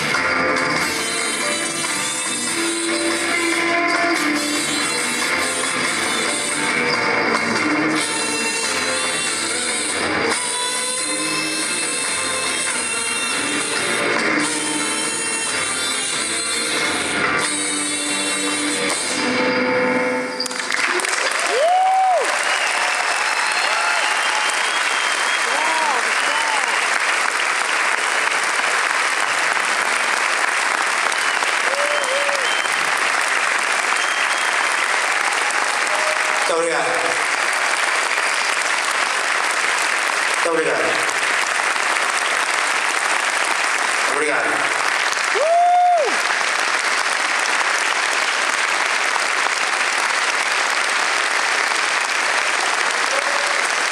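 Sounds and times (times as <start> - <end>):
audience applause: 0.0 - 15.7, 20.4 - 53.9
live band music: 0.0 - 21.2.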